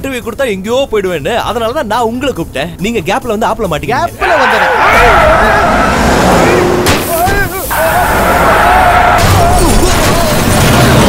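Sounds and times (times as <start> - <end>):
men yelling: 4.0 - 10.6
car crash: 4.7 - 11.0
vehicle rumble: 4.7 - 11.0.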